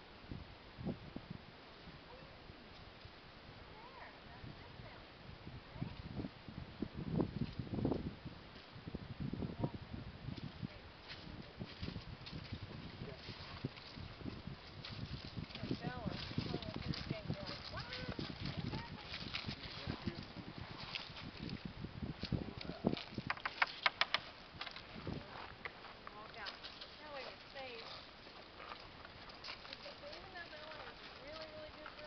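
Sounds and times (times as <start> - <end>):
footsteps on dirt: 11.0 - 21.6, 22.3 - 32.0
hoofbeats on dirt: 11.2 - 21.2, 22.8 - 32.0.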